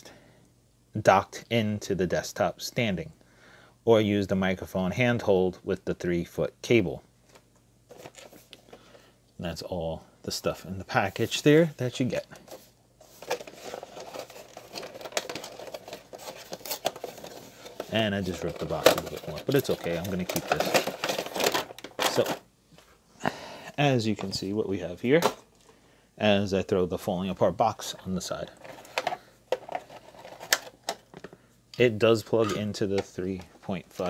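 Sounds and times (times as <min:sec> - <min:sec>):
plastic packaging clicking and crackling: 0:12.2 - 0:22.4, 0:28.4 - 0:31.4.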